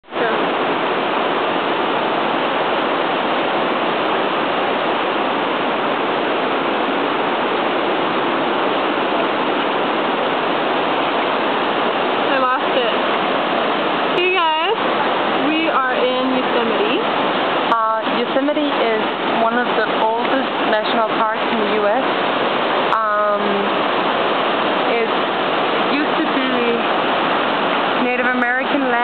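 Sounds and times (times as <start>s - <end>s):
fast-flowing white water rushing: 0.0s - 29.0s.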